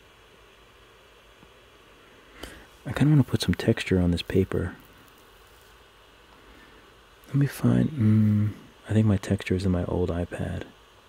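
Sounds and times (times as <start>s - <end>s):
background hiss: 0.0s - 11.0s
low hum: 1.7s - 10.8s.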